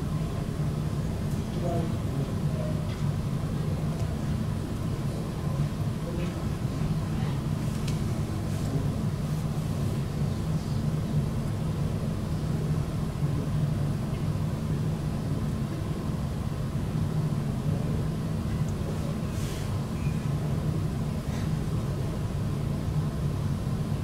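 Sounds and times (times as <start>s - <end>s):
low room hum: 0.0s - 24.0s.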